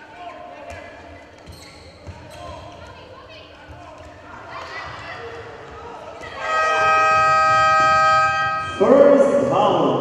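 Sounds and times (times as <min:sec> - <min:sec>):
arena horn steady tone: 0:06.4 - 0:09.3.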